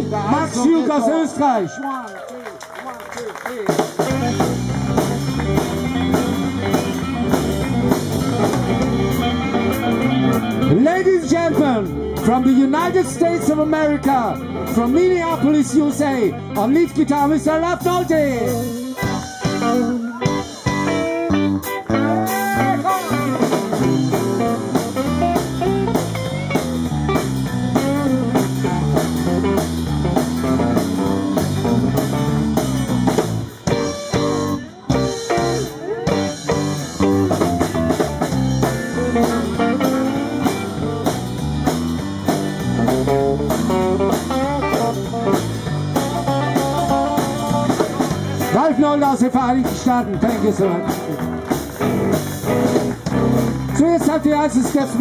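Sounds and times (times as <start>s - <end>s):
band keeping a steady beat: 0.0s - 1.5s, 3.3s - 55.0s
electric guitar solo: 18.4s - 54.7s.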